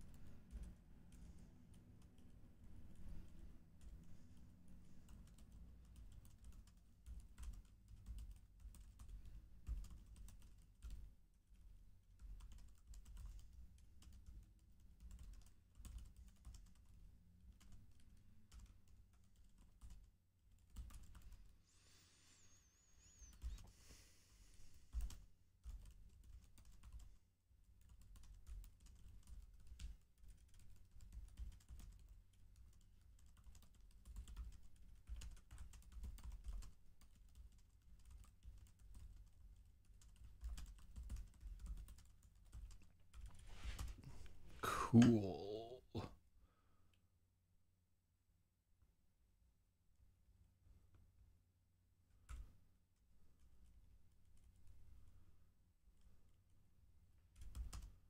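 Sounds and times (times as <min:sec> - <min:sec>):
typing on computer keyboard: 0:00.2 - 0:00.8, 0:05.0 - 0:21.5, 0:24.9 - 0:27.2, 0:27.8 - 0:43.9, 0:52.2 - 0:52.5, 0:57.3 - 0:58.0.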